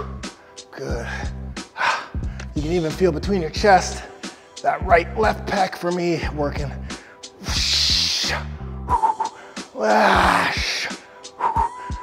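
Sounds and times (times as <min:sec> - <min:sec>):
background music: 0:00.0 - 0:12.0
man groaning: 0:07.5 - 0:11.0.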